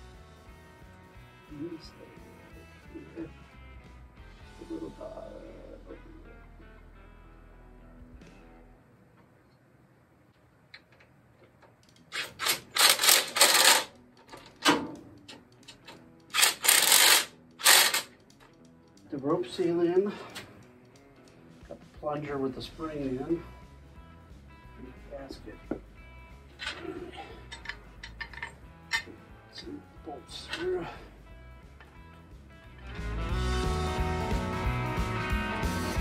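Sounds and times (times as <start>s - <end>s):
quiet background music: 0.0s - 36.0s.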